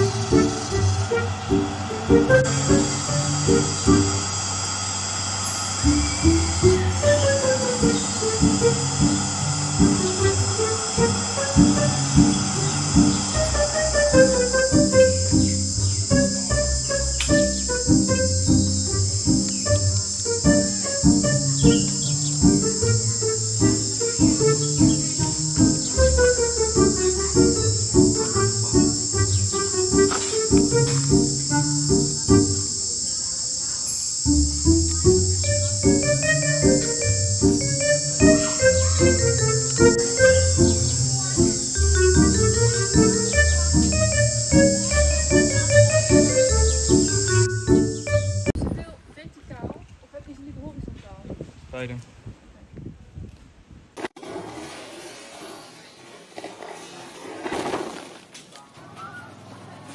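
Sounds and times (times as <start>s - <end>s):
insects buzzing: 0.0s - 48.6s.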